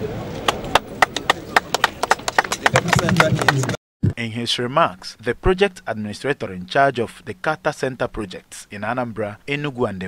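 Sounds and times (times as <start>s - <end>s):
people clapping: 0.3s - 3.8s.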